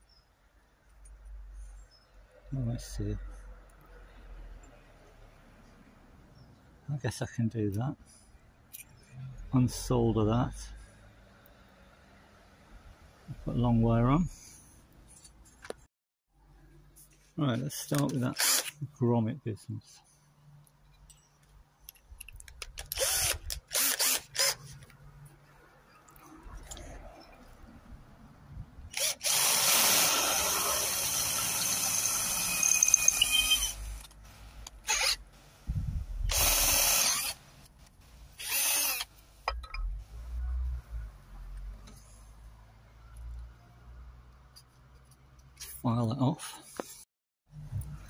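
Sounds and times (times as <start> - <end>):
cordless drill boring through metal: 18.4 - 18.7, 22.8 - 24.7, 28.9 - 34.1, 34.8 - 35.2, 36.3 - 37.4, 38.4 - 39.1
high squealing tone: 31.4 - 33.9.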